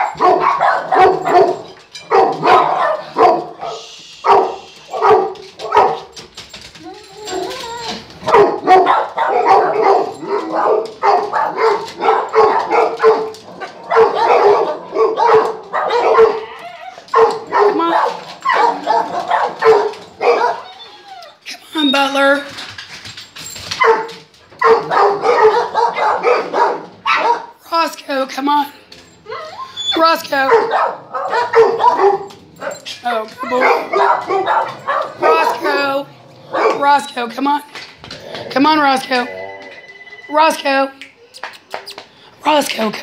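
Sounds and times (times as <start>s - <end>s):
dog barking: 0.0s - 6.1s, 8.2s - 20.7s, 23.8s - 27.6s, 30.4s - 35.9s, 36.5s - 37.0s.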